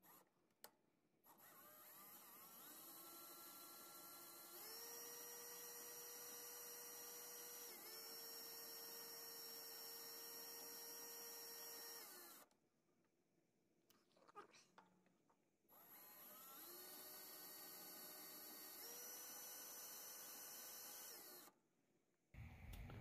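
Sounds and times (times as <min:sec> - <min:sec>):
cordless drill motor whining: 0:01.3 - 0:12.5, 0:15.7 - 0:21.6.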